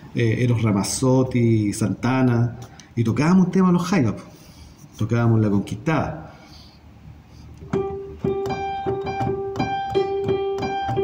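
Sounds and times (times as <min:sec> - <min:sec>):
piano-like keyboard music: 0:07.6 - 0:11.0.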